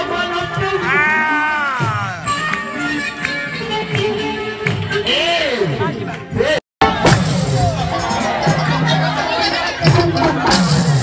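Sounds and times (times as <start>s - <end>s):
accompanying music: 0.0s - 6.4s.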